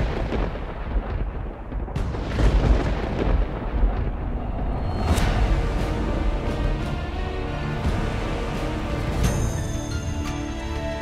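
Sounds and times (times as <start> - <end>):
deep thunder-like rumble: 0.0 - 9.2.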